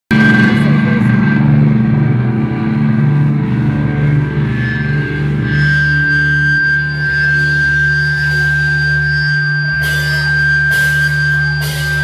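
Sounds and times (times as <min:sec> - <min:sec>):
electric guitars droning chord: 0:00.1 - 0:12.0
high guitar feedback tone: 0:00.1 - 0:12.0.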